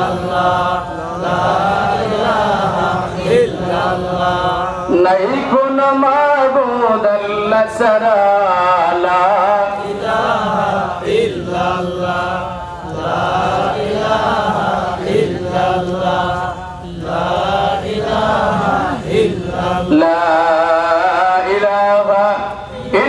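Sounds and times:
man chanting melodically: 0.0 - 23.0.

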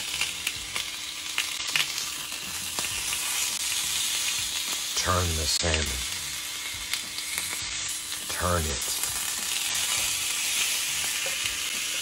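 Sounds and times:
fish sizzling on a grill: 0.0 - 12.0.

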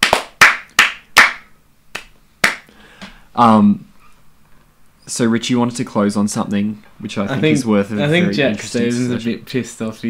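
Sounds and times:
sharp hand claps: 0.0 - 3.1.

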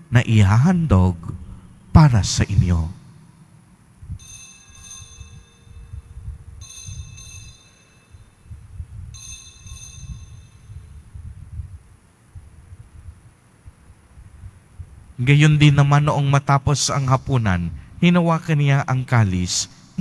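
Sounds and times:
low uneven rumble: 0.0 - 20.0
altar bells ringing: 4.2 - 8.5, 9.1 - 11.0.

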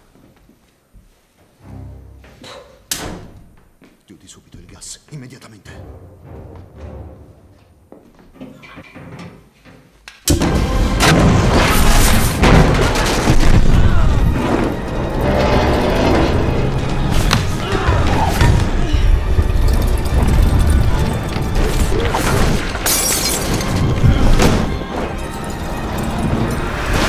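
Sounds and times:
film score music: 1.5 - 9.1, 10.0 - 27.0
scattered impacts: 10.3 - 25.1.

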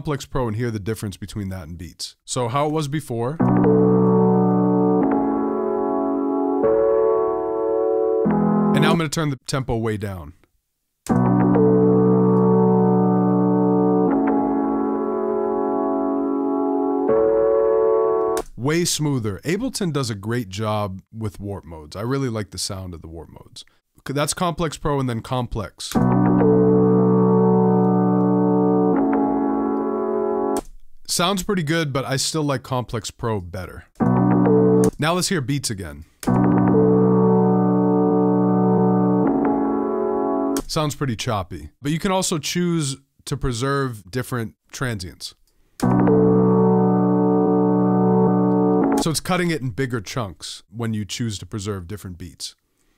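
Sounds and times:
slow held keyboard chords: 3.4 - 9.0, 11.1 - 18.5, 26.0 - 30.6, 34.0 - 35.0, 36.3 - 40.6, 45.8 - 49.1.

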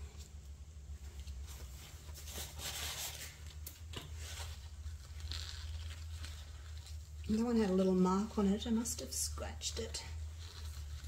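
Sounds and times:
steady low hum: 0.0 - 11.0
gloved hands clicking and rustling: 3.2 - 8.0.

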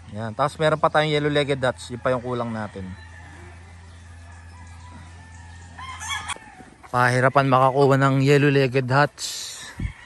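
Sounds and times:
steady low hum: 0.0 - 6.9
rooster crowing: 1.4 - 6.8.

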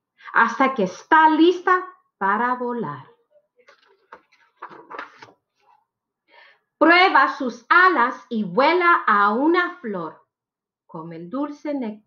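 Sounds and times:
paper page rustling: 3.6 - 5.8.

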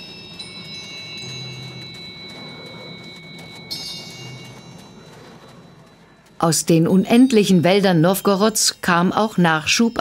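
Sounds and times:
soft chime-like background music: 0.0 - 10.0.

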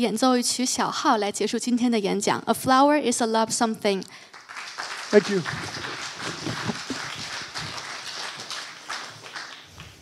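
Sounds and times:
audience applause: 4.3 - 9.9.

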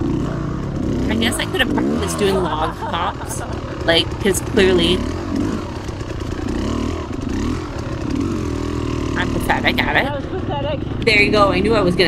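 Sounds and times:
dirt bike engine revving: 0.0 - 12.0.

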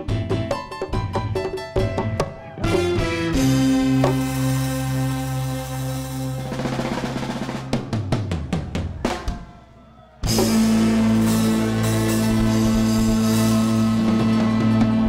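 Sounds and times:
drum fill on kit: 0.0 - 9.5, 10.2 - 15.0
reggae band playing: 0.0 - 15.0.

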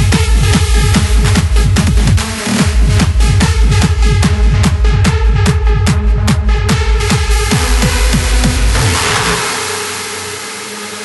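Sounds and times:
kick drum: 0.0 - 9.5
noisy synth wash: 0.0 - 11.0.

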